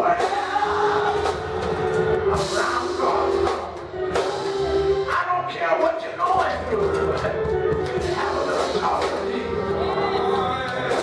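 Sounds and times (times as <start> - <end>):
man singing into microphone: 0.0 - 1.3, 8.0 - 11.0
drum kit beat: 0.0 - 11.0.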